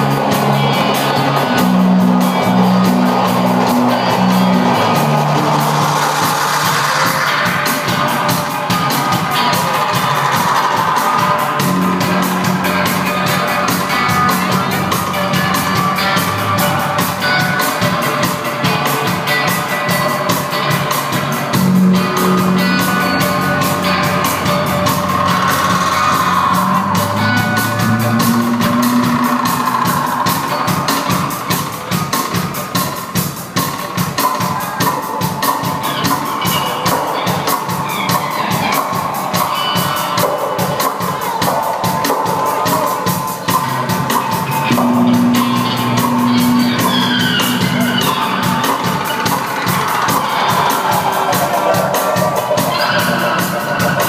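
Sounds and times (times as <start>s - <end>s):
high tone sliding downward: 0.0s - 18.2s, 21.5s - 30.6s, 44.0s - 54.0s
rock band playing: 0.0s - 54.0s
ticking percussion beat: 0.0s - 54.0s.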